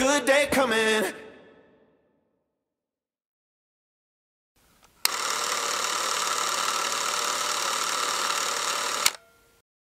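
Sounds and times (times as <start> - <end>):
film projector whir and rattle: 5.0 - 9.2
projector click: 8.3 - 9.3.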